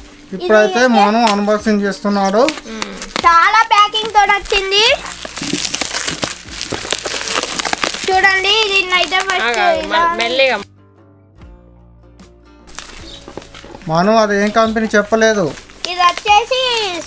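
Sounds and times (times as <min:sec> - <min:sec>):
plastic packaging crinkling: 0:02.1 - 0:10.6, 0:12.7 - 0:17.0.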